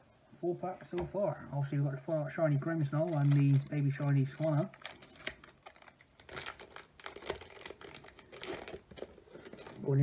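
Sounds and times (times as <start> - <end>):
foil wrapper crinkling: 3.0 - 10.0.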